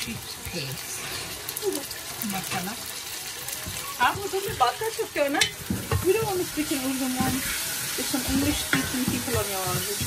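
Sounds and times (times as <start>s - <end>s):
onions sizzling in a pot: 0.0s - 10.0s
wooden spatula stirring: 3.5s - 10.0s.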